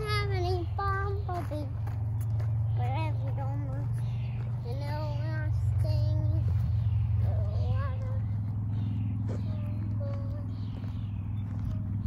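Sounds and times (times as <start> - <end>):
girl singing: 0.0 - 1.9, 2.7 - 11.0
steady low rumble: 0.0 - 12.0.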